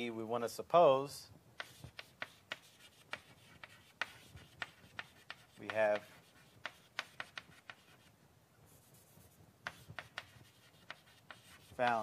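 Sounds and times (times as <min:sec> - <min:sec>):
chalk scraping on blackboard: 0:01.6 - 0:08.1, 0:08.7 - 0:12.0
chalk tapping on blackboard: 0:01.6 - 0:08.1, 0:08.8 - 0:12.0.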